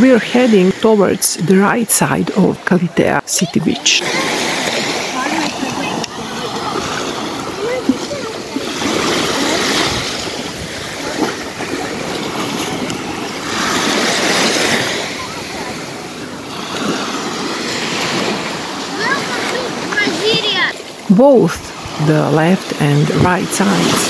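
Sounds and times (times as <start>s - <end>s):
people talking: 0.0s - 4.4s, 5.1s - 8.9s, 18.9s - 24.0s
small waves on sandy beach: 0.0s - 24.0s.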